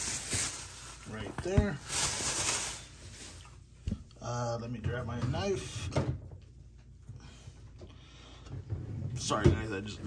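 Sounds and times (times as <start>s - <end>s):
plastic bag rustling: 0.0s - 3.7s.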